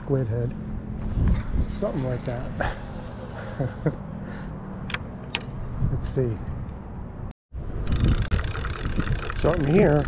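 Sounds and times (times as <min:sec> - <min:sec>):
wind rumble on microphone: 0:01.0 - 0:02.0, 0:05.6 - 0:10.0.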